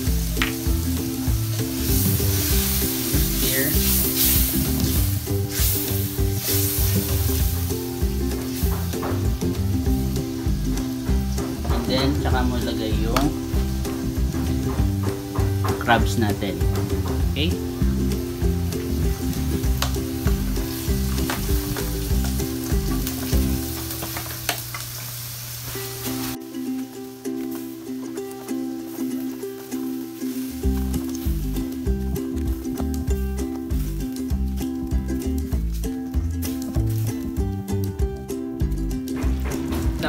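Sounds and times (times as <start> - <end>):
background music: 0.0 - 24.0, 25.8 - 40.0
crabs sizzling in a pan: 0.0 - 37.4
sharp knocks: 13.2 - 17.4, 39.1 - 40.0.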